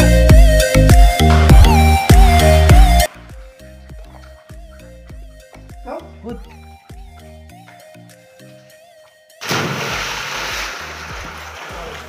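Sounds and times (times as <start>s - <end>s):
loud splash into water: 9.4s - 12.0s
water churning and sloshing: 9.4s - 12.0s.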